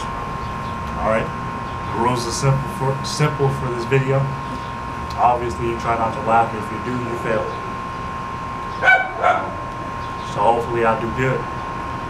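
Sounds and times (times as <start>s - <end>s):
dog yapping: 8.8s - 9.7s.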